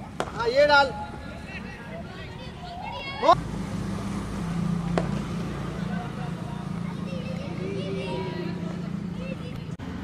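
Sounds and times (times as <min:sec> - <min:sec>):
open-air noise: 0:00.0 - 0:10.0
cricket bat striking ball: 0:04.9 - 0:05.3.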